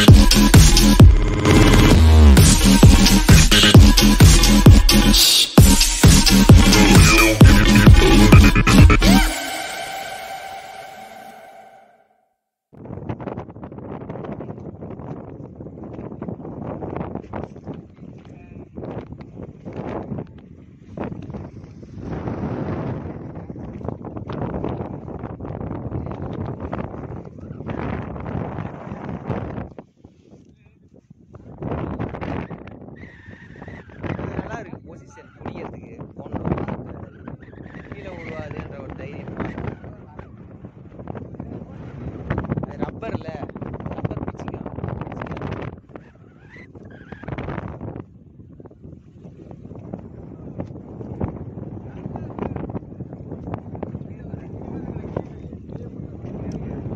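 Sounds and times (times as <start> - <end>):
wind buffeting microphone: 12.8 - 56.9
boat and water noise: 13.4 - 56.9.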